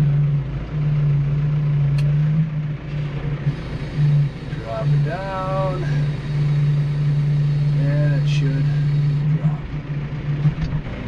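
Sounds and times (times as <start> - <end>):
tractor engine droning: 0.0 - 11.0.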